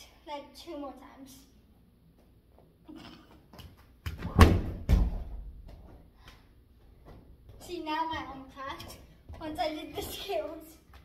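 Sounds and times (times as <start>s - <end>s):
gymnast landing thuds: 4.0s - 6.0s.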